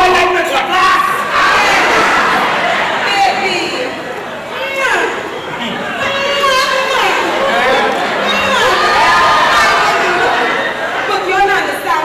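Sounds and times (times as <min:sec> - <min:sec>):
audience laughing and shouting: 0:00.7 - 0:12.0
single voices shouting: 0:01.1 - 0:11.1.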